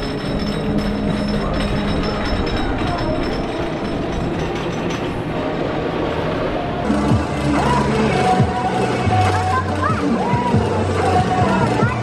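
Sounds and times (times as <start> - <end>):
wooden roller coaster rumbling: 0.0 - 12.0.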